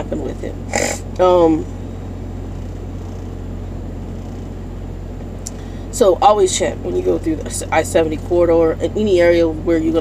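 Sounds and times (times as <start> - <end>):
truck engine hum inside cab: 0.0 - 10.0.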